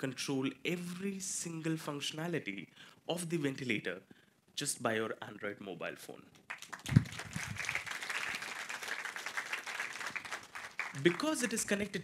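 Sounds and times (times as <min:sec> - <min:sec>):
audience applauding: 0:06.5 - 0:11.6.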